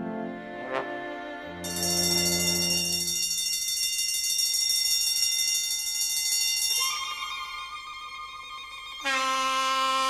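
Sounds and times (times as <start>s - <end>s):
electric bell ringing: 1.6s - 7.7s.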